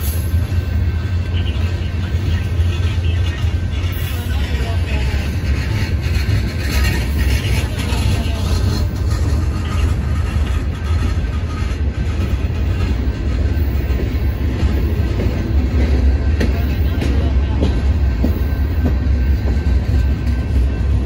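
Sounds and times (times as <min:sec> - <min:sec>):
freight train wheels rumbling: 0:00.0 - 0:21.0.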